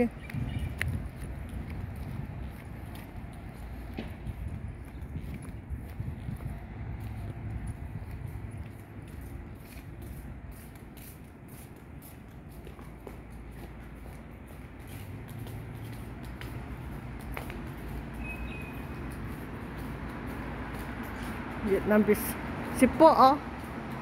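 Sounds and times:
distant traffic hum: 0.0s - 24.0s
footsteps on paving: 0.0s - 24.0s.

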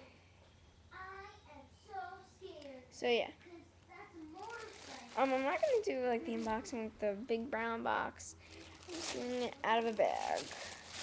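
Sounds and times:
faint steady hum: 0.0s - 11.0s
girl speaking: 0.9s - 10.7s.

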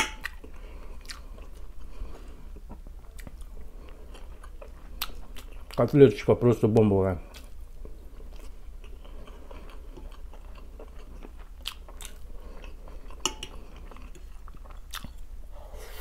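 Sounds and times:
close chewing with wet mouth sounds: 0.2s - 6.0s, 7.2s - 15.3s.

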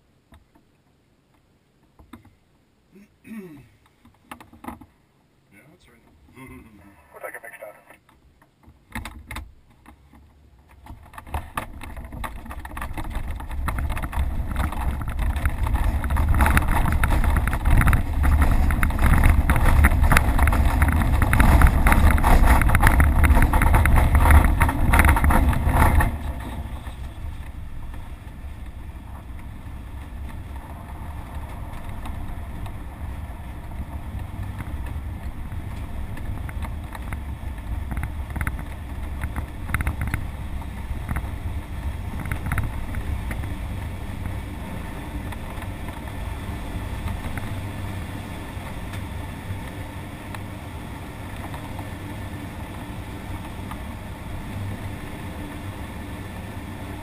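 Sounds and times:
deep rumble: 10.5s - 57.0s.

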